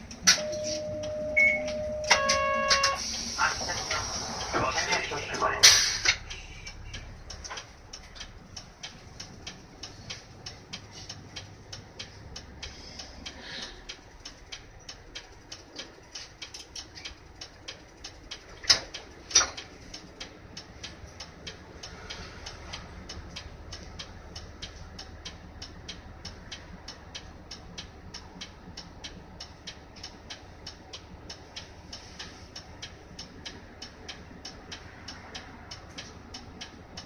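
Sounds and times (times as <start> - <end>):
faint low engine hum: 0.0 - 37.0
turn signal relay ticking: 0.0 - 37.0.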